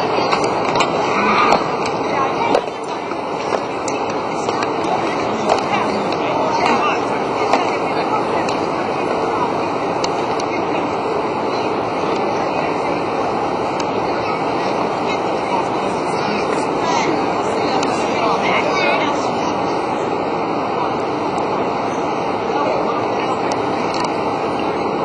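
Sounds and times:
large crowd chatter: 0.0s - 25.0s.

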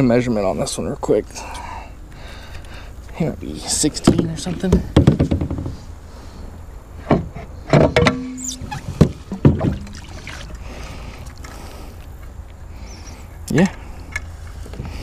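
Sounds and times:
low steady rumble: 0.0s - 15.0s
gear knocking on kayak hull: 4.0s - 5.8s.

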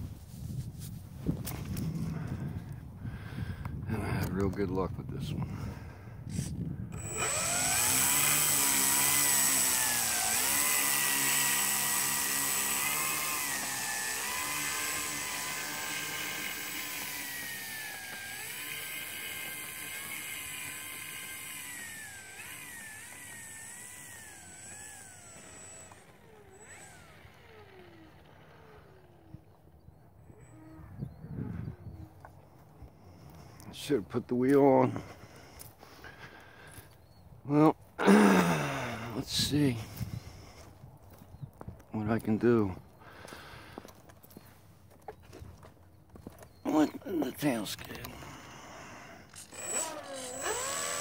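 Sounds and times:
electric model plane motor whine: 6.3s - 33.5s, 47.7s - 51.0s.

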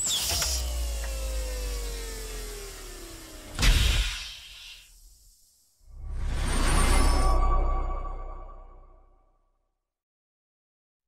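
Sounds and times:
sharp hiss: 3.6s - 5.8s.

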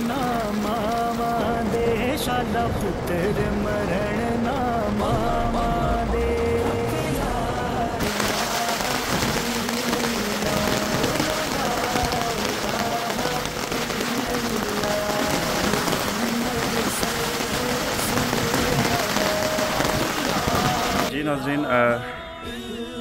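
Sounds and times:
heavy rain on puddles: 0.0s - 21.1s.

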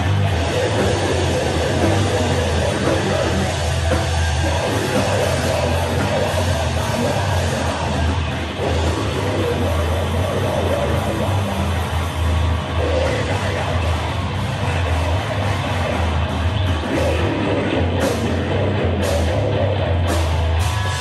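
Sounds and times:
drum kit: 0.0s - 21.0s
electric guitar: 0.0s - 21.0s.

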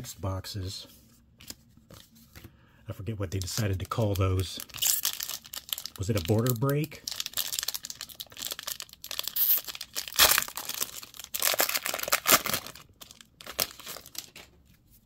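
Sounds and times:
foil wrapper tearing and crinkling: 3.6s - 14.4s.

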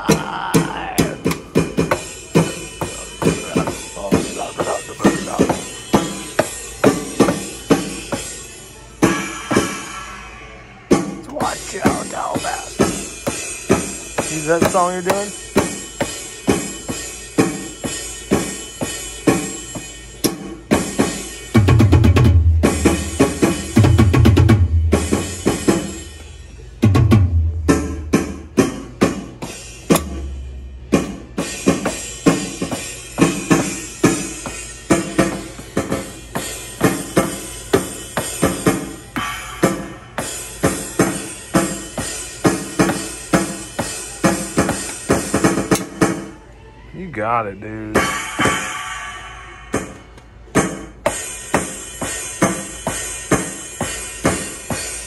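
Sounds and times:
electronic drum and cymbal hits: 0.0s - 46.3s, 47.9s - 55.0s
deep bass drum thuds: 26.8s - 28.7s.

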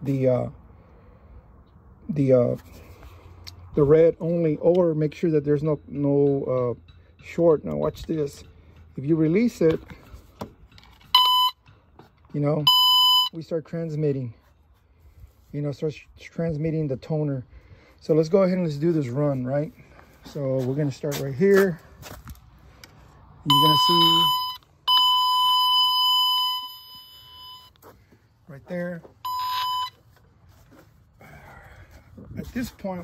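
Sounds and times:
short steady beep: 11.1s - 11.6s, 12.7s - 13.4s, 23.5s - 27.8s, 29.2s - 30.1s
high-pitched probe tone: 23.5s - 27.8s, 29.2s - 30.0s.

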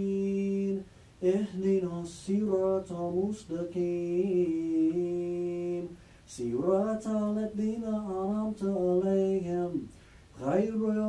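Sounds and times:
man chanting recitation: 0.0s - 11.0s.

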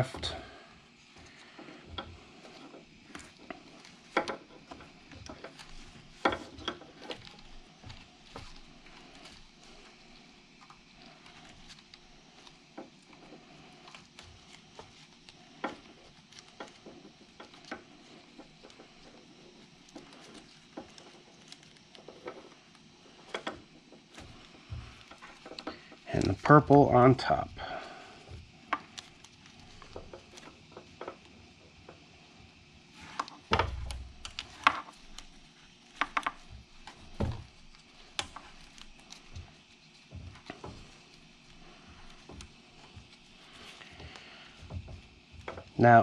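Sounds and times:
wire handling clicks and rustles: 0.0s - 46.0s.

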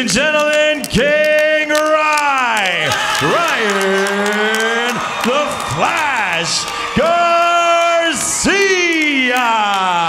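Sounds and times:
announcer's long call over loudspeaker: 2.1s - 10.0s.

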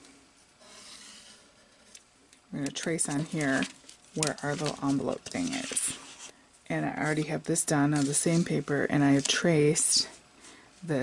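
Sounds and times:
hands rustling paper: 2.7s - 6.3s, 7.0s - 9.9s.

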